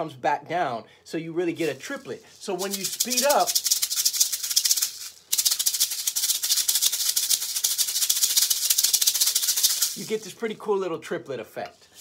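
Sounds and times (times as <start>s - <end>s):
maracas rattling: 1.6s - 10.7s, 11.7s - 12.0s.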